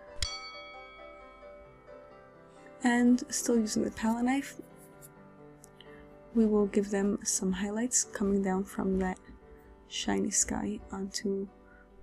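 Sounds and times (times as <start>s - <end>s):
soft background music: 0.0s - 12.0s
bright bell-like ding: 0.2s - 1.6s.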